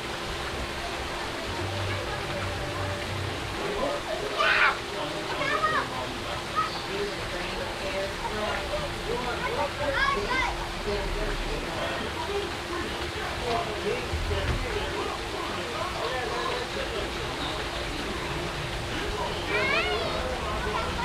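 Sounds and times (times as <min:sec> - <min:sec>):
indistinct voices: 0:00.0 - 0:21.0
waterfall pouring into pool: 0:00.0 - 0:21.0.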